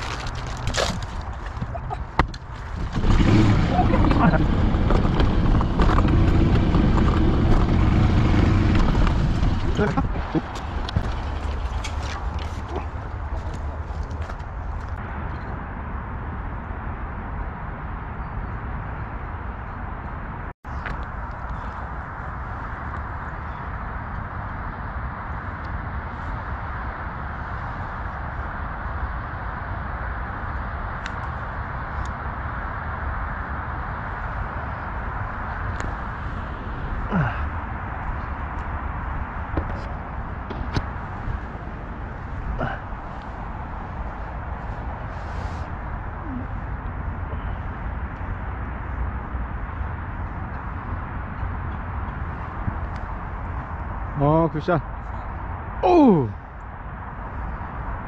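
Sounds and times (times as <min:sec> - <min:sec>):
low rumbling background noise: 0:00.0 - 0:58.0.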